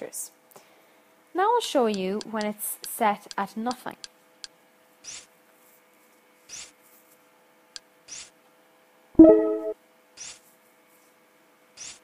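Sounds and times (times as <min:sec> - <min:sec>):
low steady hum: 0:09.2 - 0:09.8
soft menu swishes: 0:09.2 - 0:09.8.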